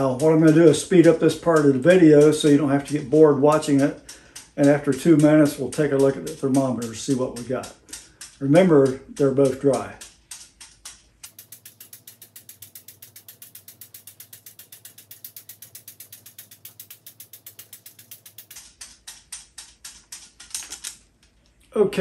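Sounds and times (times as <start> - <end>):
rhythmic clicking of whirled device: 0.0 - 21.3.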